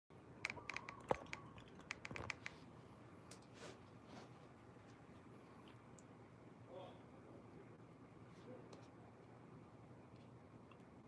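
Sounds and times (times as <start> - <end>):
fingers tapping on smartphone: 0.4 - 2.6.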